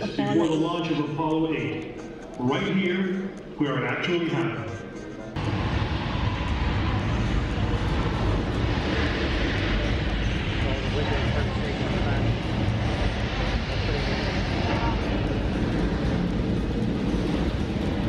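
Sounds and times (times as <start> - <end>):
rocket launch rumble over speakers: 5.4 - 18.0.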